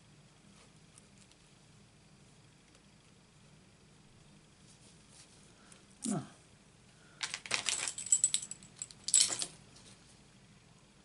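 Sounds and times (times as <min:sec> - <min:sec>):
craft supplies clicking and rattling: 0:07.2 - 0:09.5.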